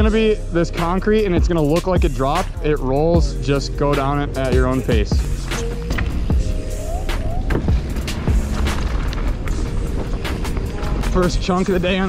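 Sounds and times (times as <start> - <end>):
background music: 0.0 - 12.0
mountain bike rolling on dirt: 7.4 - 12.0.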